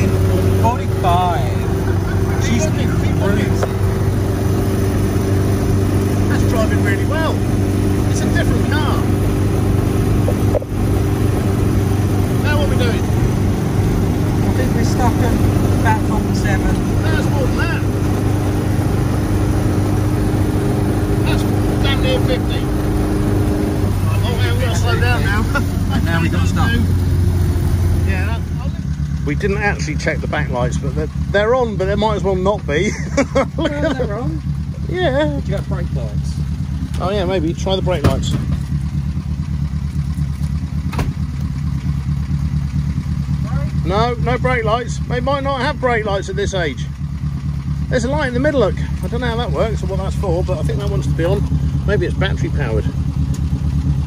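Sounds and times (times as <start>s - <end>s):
car engine running at speed: 0.0s - 54.0s.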